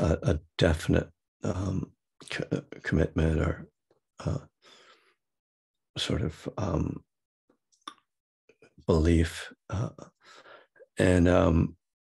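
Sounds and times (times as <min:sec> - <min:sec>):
man saying uh: 0:00.0 - 0:03.6, 0:04.2 - 0:04.5, 0:08.9 - 0:10.1.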